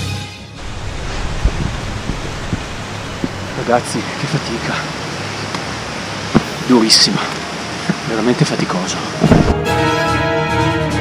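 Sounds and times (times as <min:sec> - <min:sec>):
background music: 0:00.0 - 0:01.2, 0:09.3 - 0:11.0
low thump: 0:00.6 - 0:03.7
wind on microphone: 0:00.6 - 0:04.3, 0:09.2 - 0:09.6.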